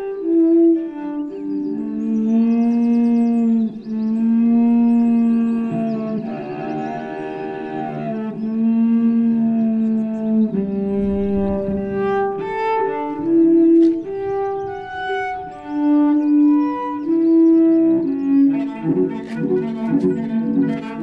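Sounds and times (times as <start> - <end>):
cello bowed in long notes: 0.0 - 21.0.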